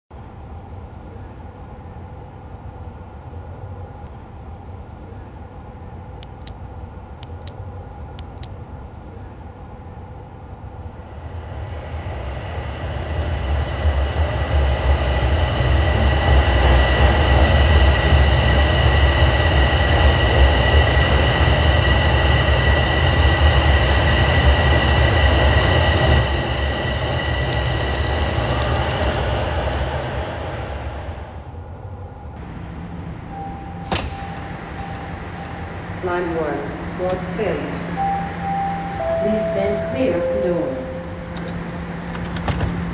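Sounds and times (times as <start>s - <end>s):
steady low hum: 0.1s - 42.9s
subway train rumble: 0.1s - 42.9s
sharp click: 27.3s - 29.2s.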